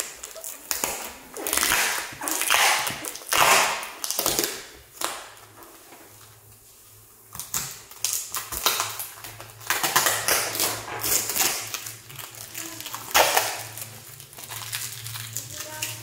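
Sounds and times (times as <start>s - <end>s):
packaging crinkling and clicking: 0.0s - 6.6s, 7.3s - 16.0s.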